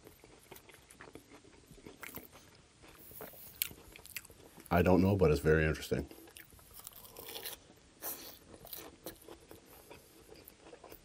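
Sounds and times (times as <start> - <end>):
chewing crisp lettuce: 0.0 - 5.1, 6.1 - 11.0.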